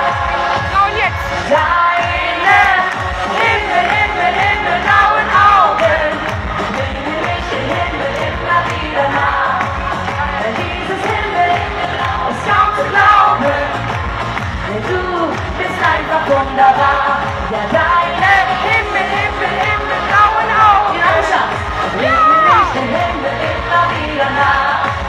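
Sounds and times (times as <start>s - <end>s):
pop song with dance beat: 0.0s - 25.0s.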